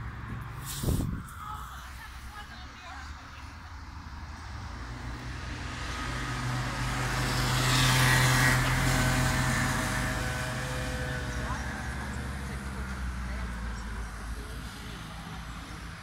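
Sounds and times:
vehicle driving past: 4.3s - 15.8s.

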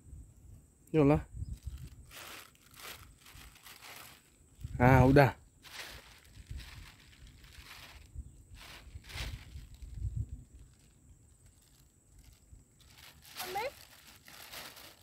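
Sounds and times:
wind rumble on microphone: 0.0s - 13.9s.

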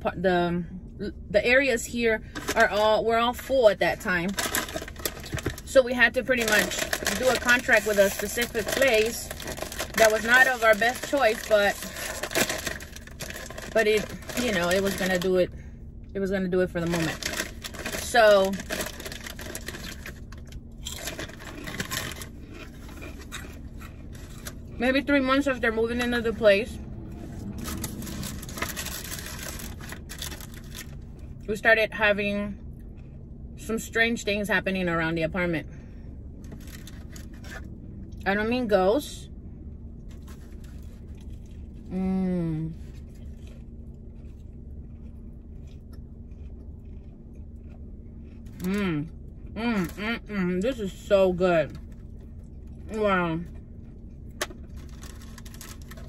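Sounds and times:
car interior rumble: 0.0s - 56.0s
low hum: 0.0s - 56.0s
paper wrapper crinkling: 4.2s - 15.3s, 16.8s - 24.7s, 27.5s - 31.1s, 54.4s - 56.0s.

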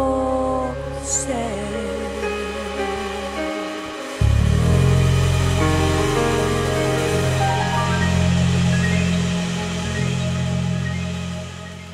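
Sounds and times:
held low music chord: 0.0s - 11.9s
scattered high notes: 4.7s - 11.9s.

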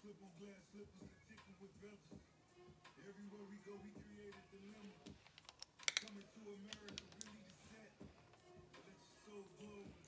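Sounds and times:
soft background music: 0.0s - 10.0s
nails clicking on palette: 5.0s - 7.6s.

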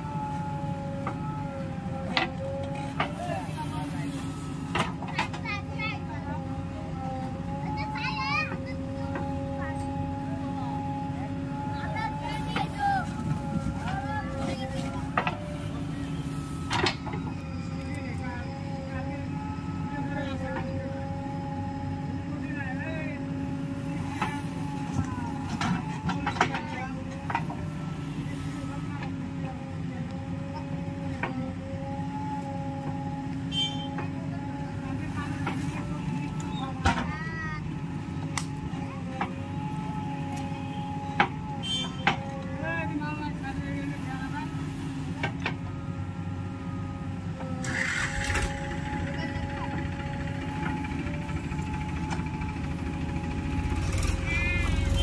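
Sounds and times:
diesel engine whining: 0.0s - 55.0s.

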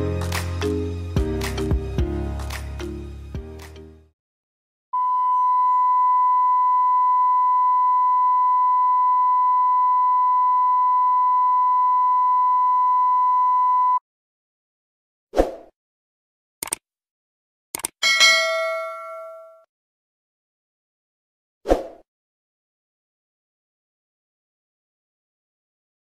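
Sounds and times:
steady test tone beep: 5.0s - 14.0s.

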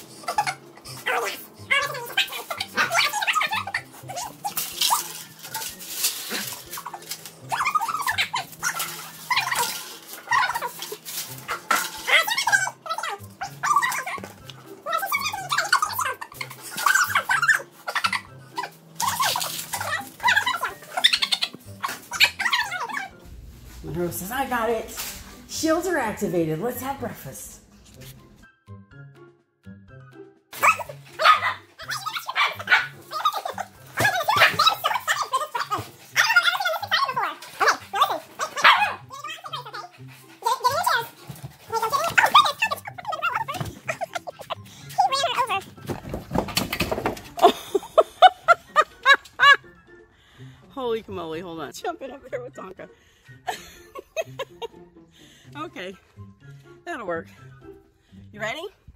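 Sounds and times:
dogs whining: 0.0s - 23.3s, 30.6s - 49.7s.

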